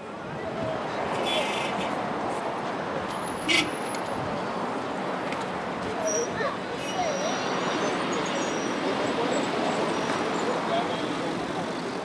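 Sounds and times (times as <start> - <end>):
traffic rumble: 0.0 - 12.0
crowd voices: 5.6 - 12.0.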